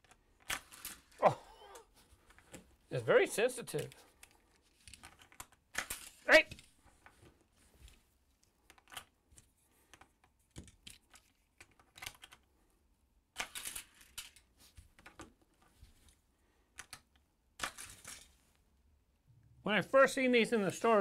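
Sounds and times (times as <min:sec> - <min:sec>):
toy cars clattering: 0:00.0 - 0:01.3, 0:03.7 - 0:07.1, 0:09.9 - 0:12.4, 0:13.4 - 0:15.4, 0:16.8 - 0:18.4.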